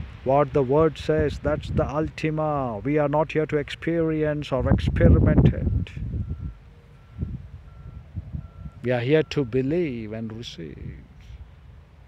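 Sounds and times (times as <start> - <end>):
man speaking: 0.3 - 6.0, 8.8 - 11.2.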